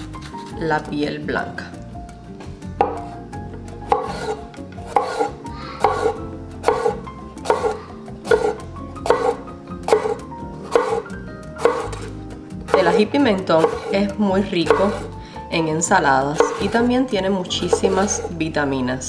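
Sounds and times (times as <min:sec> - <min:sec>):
knife knocking on wooden board: 0:02.8 - 0:03.1, 0:03.9 - 0:11.0, 0:11.6 - 0:12.1
knife slicing pepper: 0:03.9 - 0:15.2, 0:16.3 - 0:17.0, 0:17.6 - 0:18.4.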